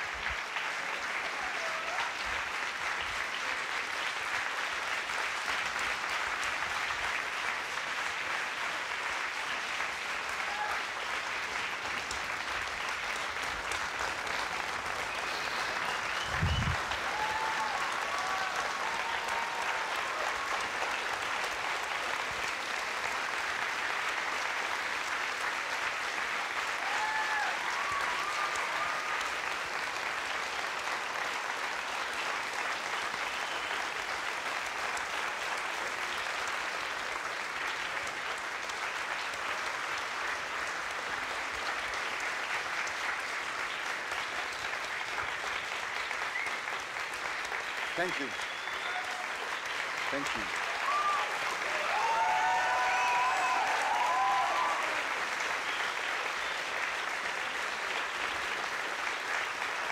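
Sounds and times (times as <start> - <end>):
audience clapping: 0.0 - 59.9
short cheers: 1.2 - 2.2, 10.3 - 11.0, 15.0 - 21.0, 26.7 - 29.5, 47.9 - 56.0.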